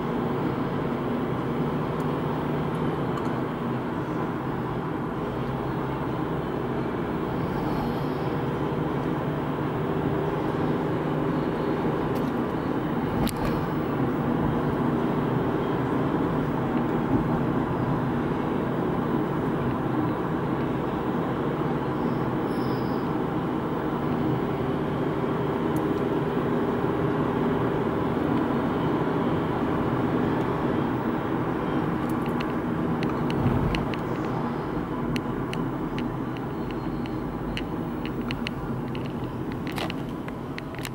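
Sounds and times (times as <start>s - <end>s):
car engine and tyre noise: 0.0s - 40.9s.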